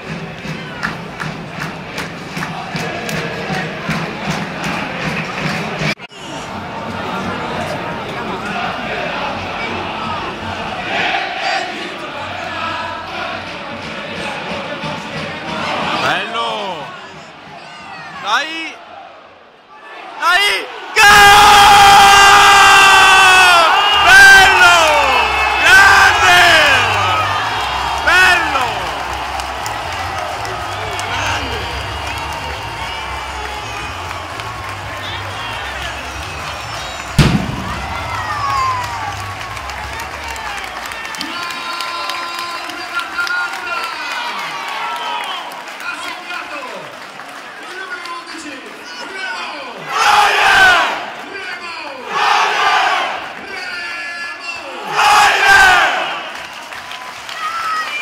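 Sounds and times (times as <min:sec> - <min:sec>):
rhythmic crowd clapping: 0:00.0 - 0:06.1, 0:23.5 - 0:53.9, 0:54.9 - 0:58.0
crowd noise: 0:00.0 - 0:58.0
crowd chanting: 0:01.6 - 0:17.4, 0:18.8 - 0:40.7, 0:49.8 - 0:51.1, 0:52.0 - 0:53.3, 0:54.6 - 0:56.3
fans whistling: 0:23.5 - 0:39.3.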